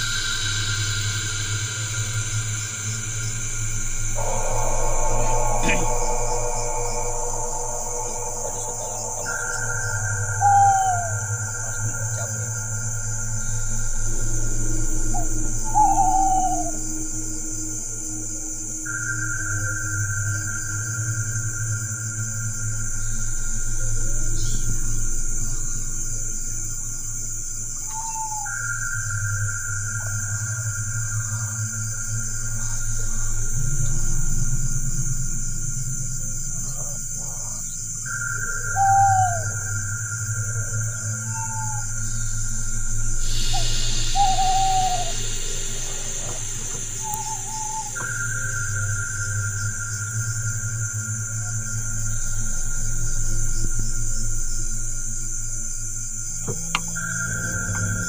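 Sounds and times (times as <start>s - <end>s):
falling owl-like hoot: 0.0s - 20.8s, 27.8s - 28.7s, 36.7s - 49.8s
eerie droning ambient music: 0.0s - 58.0s.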